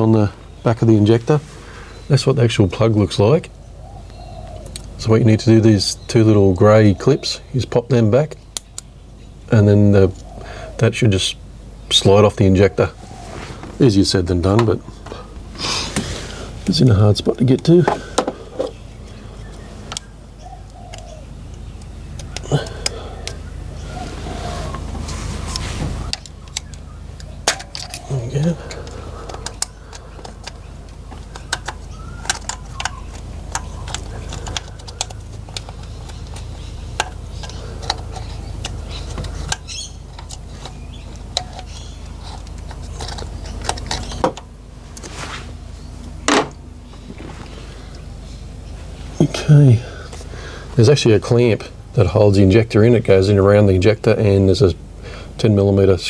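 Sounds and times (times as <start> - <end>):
steady low hum: 0.0 - 56.0
plastic and metal clicks: 28.7 - 44.5.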